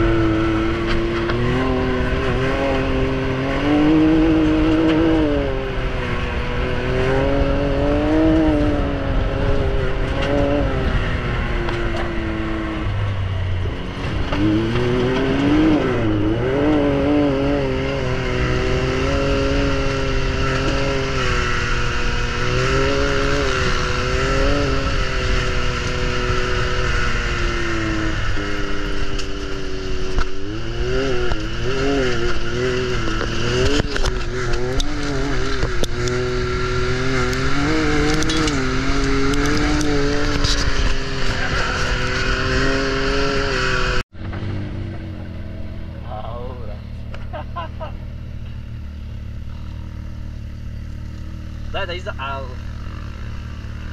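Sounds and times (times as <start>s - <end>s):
engine revving up and down: 0.0s - 53.9s.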